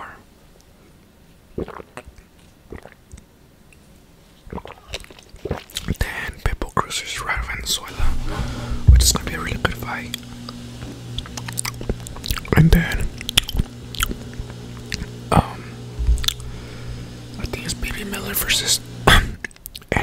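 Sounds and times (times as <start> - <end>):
chewing and biting: 4.4 - 6.0, 11.2 - 12.5, 13.2 - 15.1, 16.2 - 16.5
steady low hum: 6.0 - 20.0.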